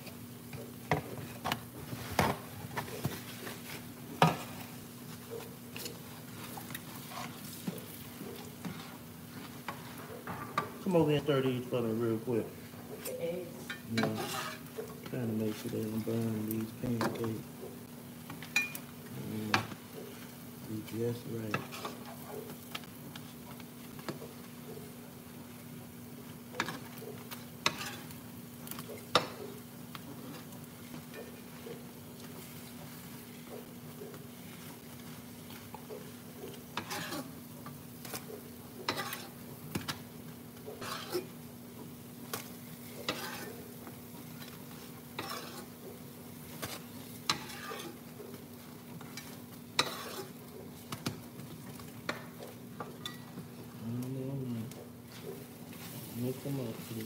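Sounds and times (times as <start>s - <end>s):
pancakes sizzling in skillets: 0.0s - 57.0s
metal spatulas scraping pans: 13.7s - 14.9s, 21.5s - 22.3s, 27.6s - 29.4s, 36.5s - 37.4s, 38.0s - 39.4s, 40.7s - 41.4s, 42.9s - 43.7s, 45.1s - 45.9s, 46.6s - 48.0s, 49.1s - 50.5s.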